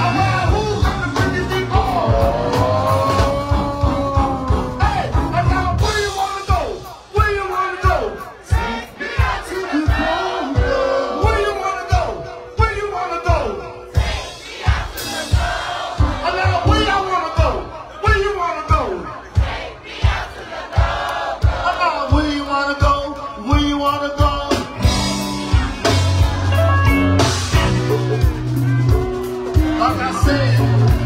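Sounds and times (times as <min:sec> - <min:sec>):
drum beat thumping: 0:00.0 - 0:31.0
live band music: 0:00.0 - 0:31.0
crowd chanting: 0:06.8 - 0:12.3, 0:13.7 - 0:22.2.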